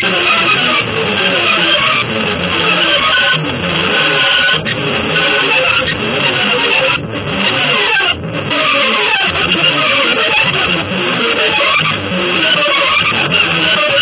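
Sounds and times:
fast electric guitar music: 0.0 - 14.0.

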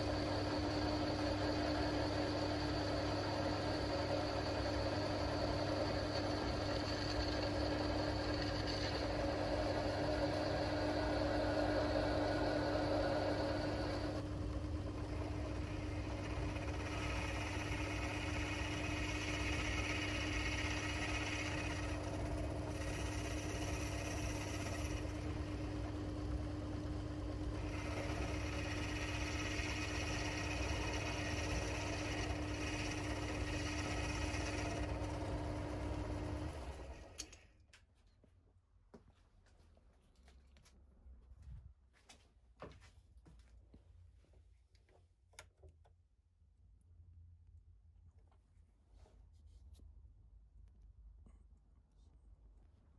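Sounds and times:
tool cutting metal: 0.0 - 14.2, 15.2 - 26.0, 27.6 - 35.1
metal lathe running: 0.0 - 37.4.

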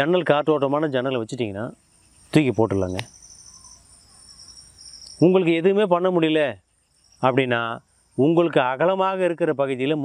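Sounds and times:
man speaking: 0.0 - 3.1
insect trilling: 0.0 - 10.0.

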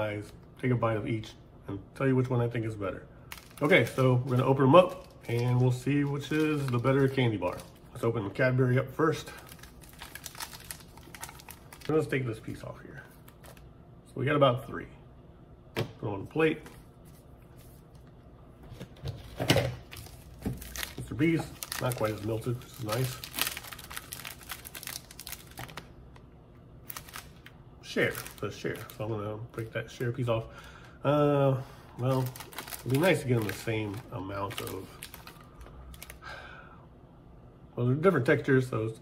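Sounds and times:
wrapper and foil crinkling: 3.3 - 8.1, 9.3 - 12.0, 19.8 - 25.9, 26.8 - 29.2, 32.0 - 36.2.

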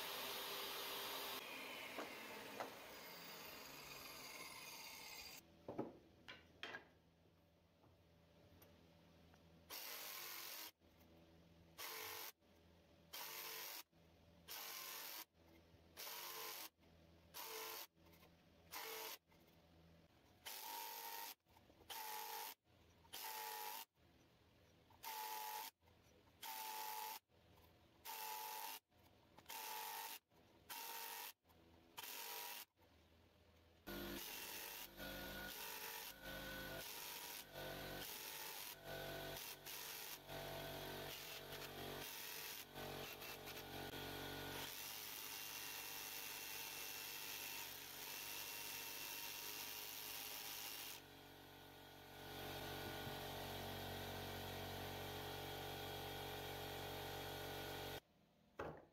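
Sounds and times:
router cutting wood: 0.0 - 5.4, 33.9 - 51.1.

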